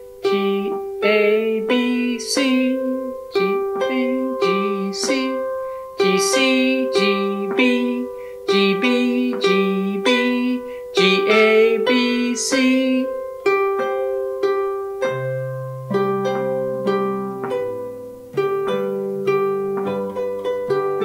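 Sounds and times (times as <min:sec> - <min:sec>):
harp chords plucked: 0:00.0 - 0:21.0
person singing softly: 0:00.0 - 0:21.0.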